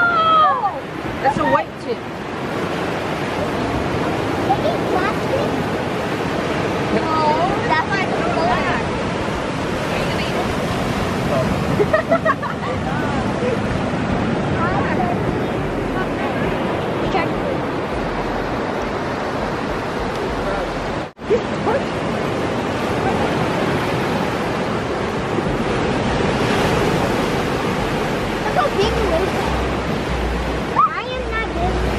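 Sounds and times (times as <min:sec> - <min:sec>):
surf on a sandy beach: 0:00.0 - 0:31.9.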